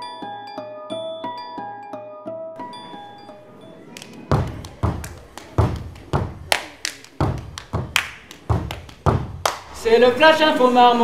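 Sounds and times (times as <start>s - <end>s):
hand claps: 3.9s - 9.8s
body percussion thumps: 4.2s - 9.7s.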